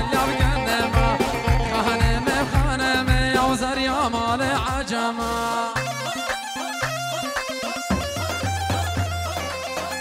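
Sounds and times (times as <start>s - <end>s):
drum beat: 0.0s - 4.9s, 6.9s - 10.0s
bass notes: 0.0s - 5.5s
wind instrument melody: 5.8s - 10.0s.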